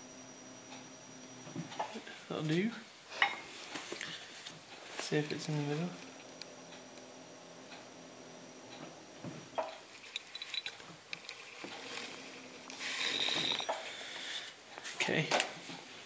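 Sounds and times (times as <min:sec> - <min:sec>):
potter's wheel turning: 0:04.5 - 0:15.0.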